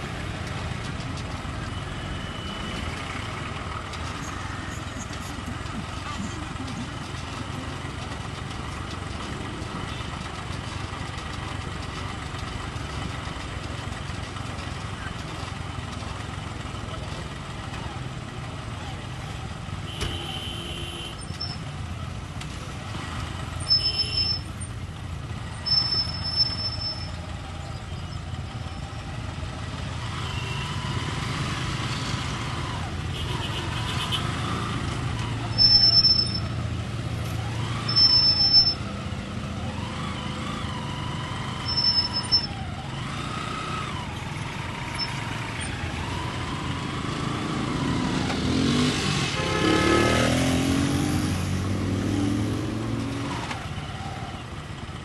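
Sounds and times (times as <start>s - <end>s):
vehicle engines rumbling: 0.0s - 55.0s
vehicle engine revving past: 47.0s - 53.5s.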